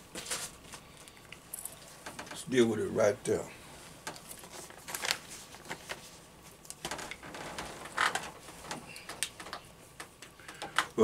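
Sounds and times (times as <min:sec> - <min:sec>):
book pages rustling: 0:03.8 - 0:10.2.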